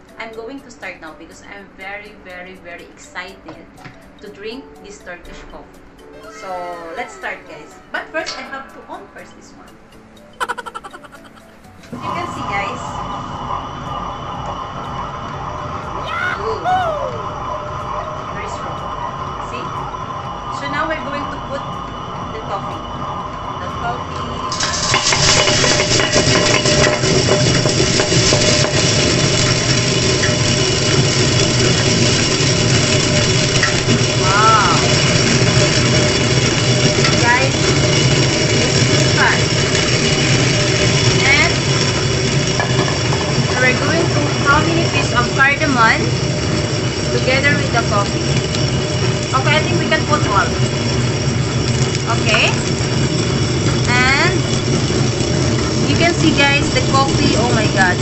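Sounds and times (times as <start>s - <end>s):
stone wet grinder whirring: 18.2s - 58.0s
coffee beans poured in: 24.5s - 58.0s.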